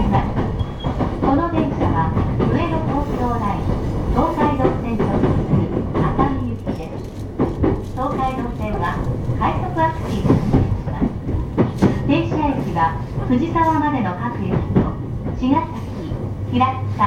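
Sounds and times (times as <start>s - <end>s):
electric train rumbling: 0.0s - 17.0s
person speaking: 7.9s - 11.1s.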